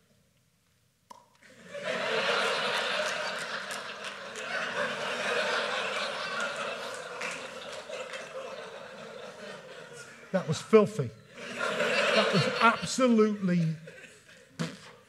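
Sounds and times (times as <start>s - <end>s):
audience laughing: 1.5s - 10.7s, 11.3s - 14.6s.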